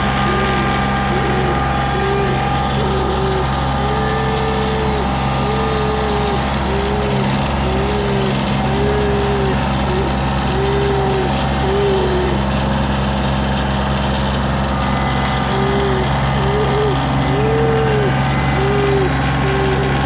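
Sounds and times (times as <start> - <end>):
diesel tractor engine running: 0.0 - 20.0.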